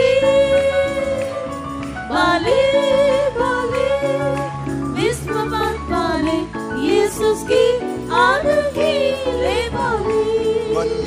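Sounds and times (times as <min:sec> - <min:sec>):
person singing wavering melody: 0:08.4 - 0:11.0.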